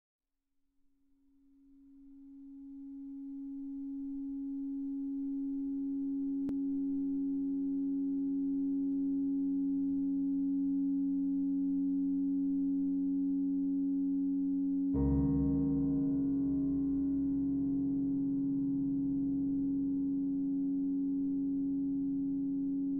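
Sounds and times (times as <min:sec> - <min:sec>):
steady drone on piano strings: 0:14.9 - 0:22.9.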